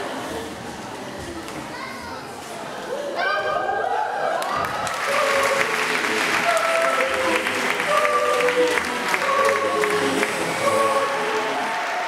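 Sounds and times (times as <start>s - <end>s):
audience chatter: 0.0s - 12.0s
children's voices: 0.0s - 12.0s.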